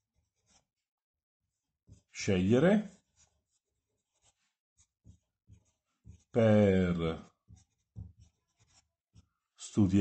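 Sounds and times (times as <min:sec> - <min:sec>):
marker pen writing on paper: 0:00.0 - 0:09.5.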